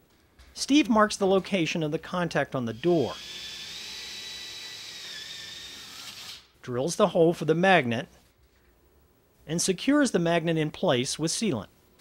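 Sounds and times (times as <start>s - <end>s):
cordless drill boring into wood: 2.9s - 6.5s.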